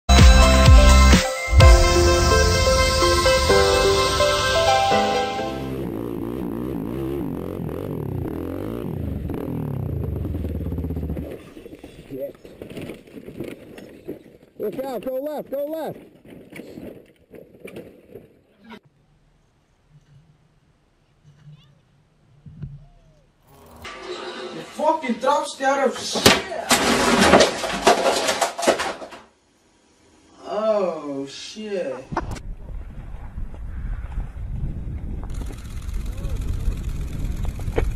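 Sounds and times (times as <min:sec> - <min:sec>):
low drone: 0:01.5 - 0:11.7
quad bike engines revving: 0:05.5 - 0:11.6, 0:35.3 - 0:37.9.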